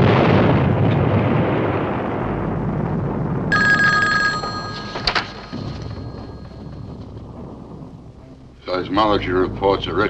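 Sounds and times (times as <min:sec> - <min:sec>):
low rumble: 0:00.0 - 0:10.0
telephone bell ringing: 0:03.5 - 0:06.6.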